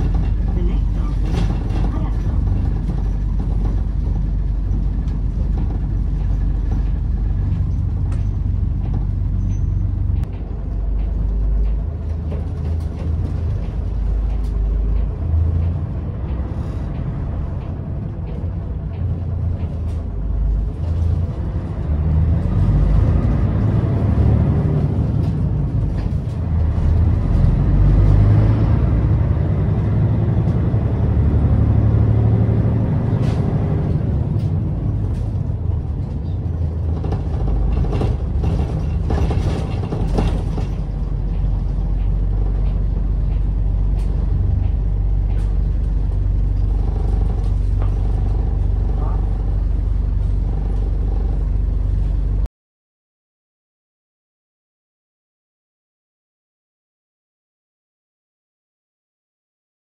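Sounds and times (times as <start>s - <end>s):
bus engine and road rumble: 0.0s - 52.5s.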